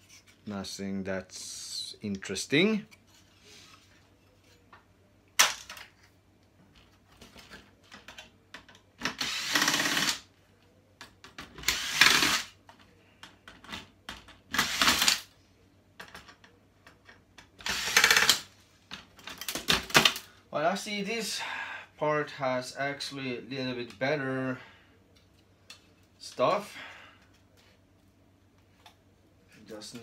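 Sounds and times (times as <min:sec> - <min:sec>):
cordless drill driving screws: 0:09.1 - 0:10.2, 0:11.6 - 0:12.5, 0:14.6 - 0:15.2, 0:17.6 - 0:18.4.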